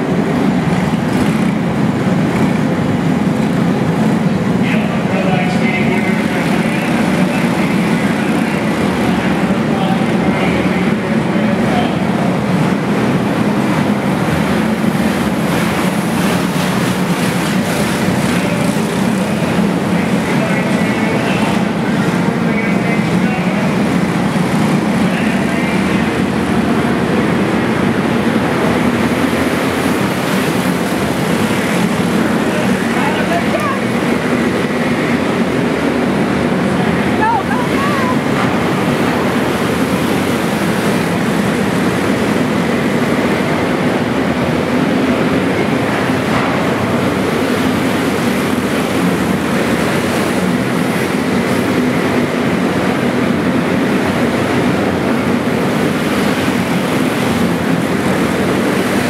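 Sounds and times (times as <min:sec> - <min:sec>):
kart engines running: 0:00.0 - 0:59.0
spectators talking: 0:02.3 - 0:54.4.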